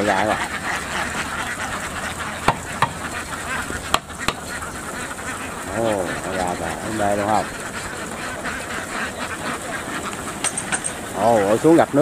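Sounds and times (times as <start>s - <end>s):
sharp knocks: 2.4s - 3.0s, 3.9s - 4.5s.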